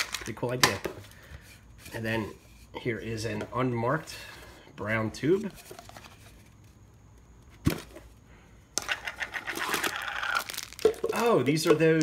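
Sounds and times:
plastic bag crinkling: 9.2 - 12.0.

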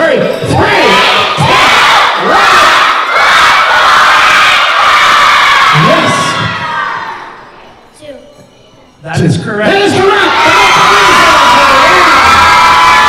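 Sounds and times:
children shouting and cheering: 0.0 - 7.7, 9.7 - 13.0.

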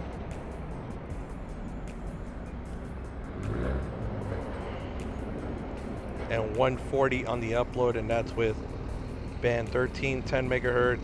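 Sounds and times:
road traffic rumble: 0.0 - 11.0
vehicle passing: 0.0 - 11.0.

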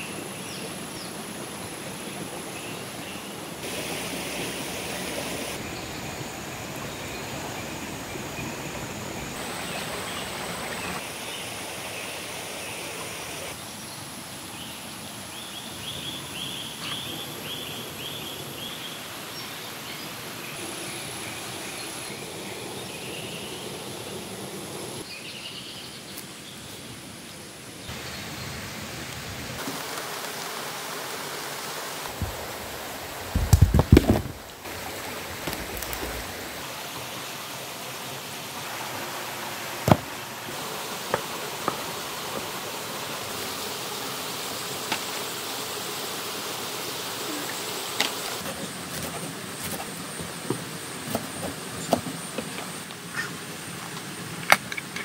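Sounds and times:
stream flowing: 0.0 - 15.3, 27.9 - 48.5.

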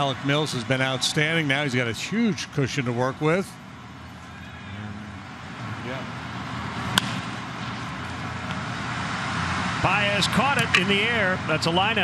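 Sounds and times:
ballpark background noise: 0.0 - 11.5
bat hitting baseball: 6.8 - 7.4.

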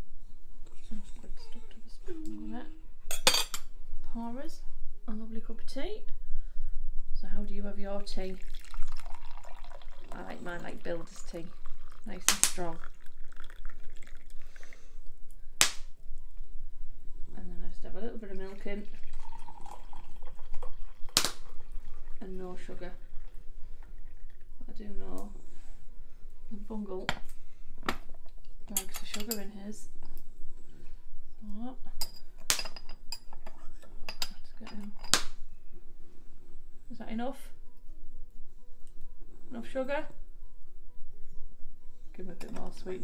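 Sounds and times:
tea pouring into a mug: 8.1 - 14.9, 18.3 - 24.7.

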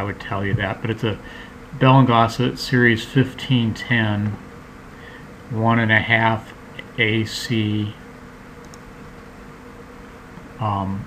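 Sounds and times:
faint hum: 0.0 - 11.0
low hiss: 0.0 - 11.0.

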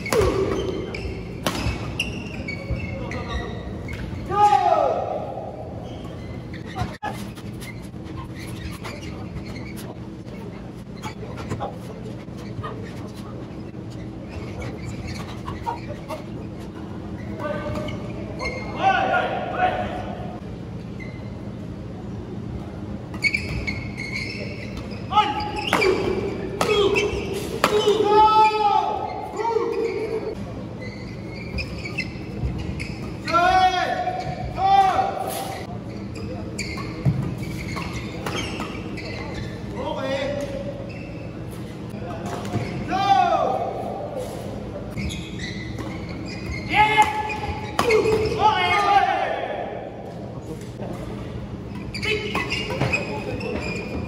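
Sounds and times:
shoes squeaking on court: 0.0 - 4.3, 5.5 - 18.8, 20.6 - 42.9, 43.6 - 48.9, 50.0 - 54.0.

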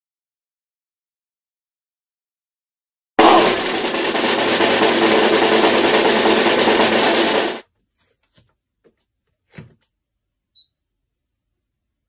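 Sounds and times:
snare drum roll: 3.2 - 7.6.

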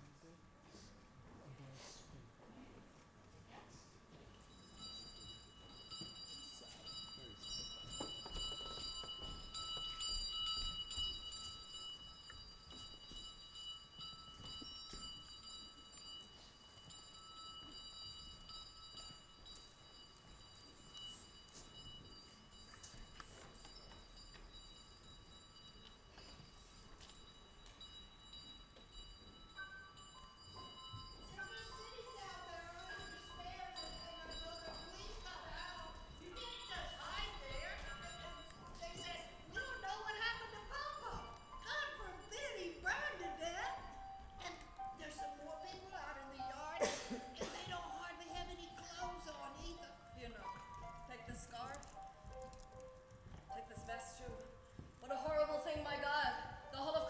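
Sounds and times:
bell-like ringing tones: 4.3 - 57.0.

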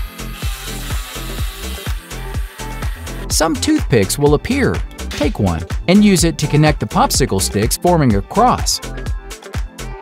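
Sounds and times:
rotary tool drilling wood: 0.0 - 3.2
background music with steady beat: 0.0 - 10.0.

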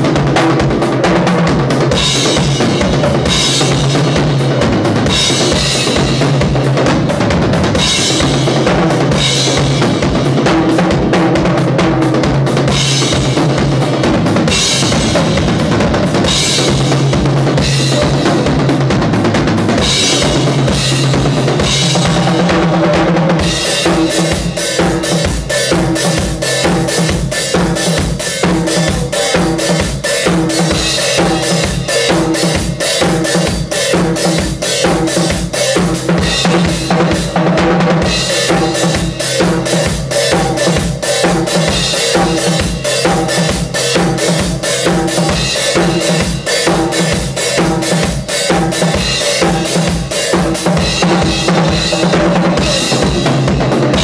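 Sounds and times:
acoustic drum kit beat: 0.0 - 54.0.

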